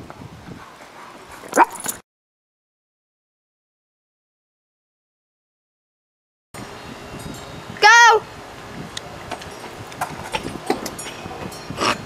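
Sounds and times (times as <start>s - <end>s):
small dog yelping: 1.5s - 2.0s.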